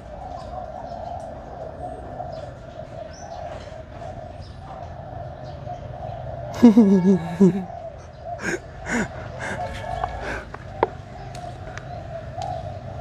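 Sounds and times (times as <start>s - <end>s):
birds calling: 0.0s - 13.0s.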